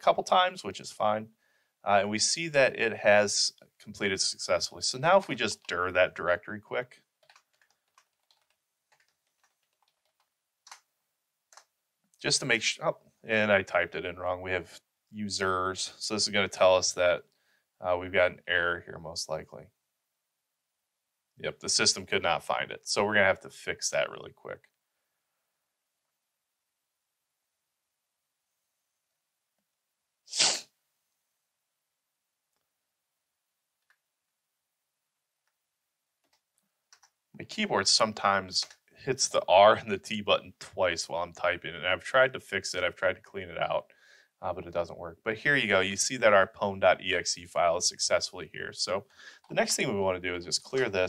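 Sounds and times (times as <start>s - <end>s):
sharp breath burst: 1.4s - 1.8s, 43.9s - 44.4s, 49.1s - 49.5s
computer keyboard typing: 7.2s - 10.9s, 11.5s - 11.7s, 36.2s - 37.2s.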